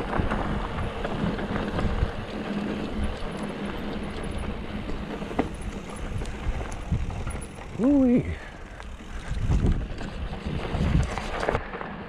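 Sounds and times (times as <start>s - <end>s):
bike rolling over gravel: 0.0s - 12.0s
bike ratchet clicking: 2.3s - 11.6s.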